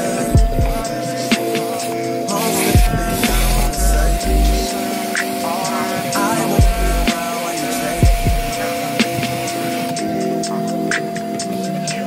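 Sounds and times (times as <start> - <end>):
hip hop music: 0.0 - 12.0
deep falling bass hit: 2.8 - 4.6, 6.6 - 7.1.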